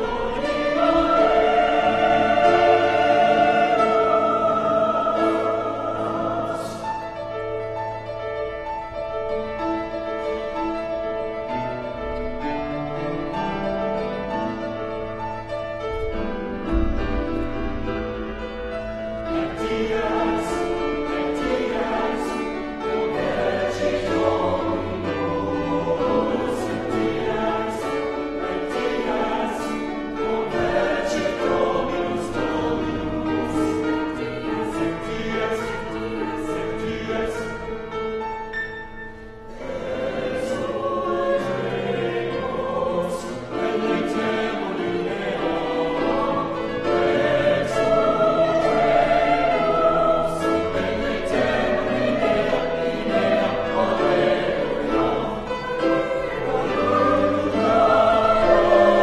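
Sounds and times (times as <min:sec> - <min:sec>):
mixed choir singing chords: 0:00.0 - 0:59.0.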